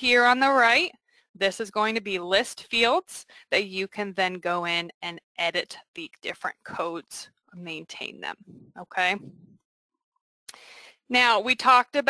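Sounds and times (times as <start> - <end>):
person speaking: 6.4 - 9.6
faint breath: 10.5 - 11.1.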